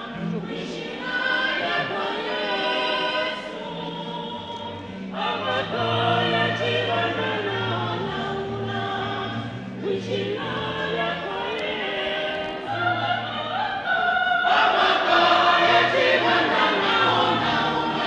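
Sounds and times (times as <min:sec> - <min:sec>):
choir singing in harmony: 0:00.0 - 0:18.0.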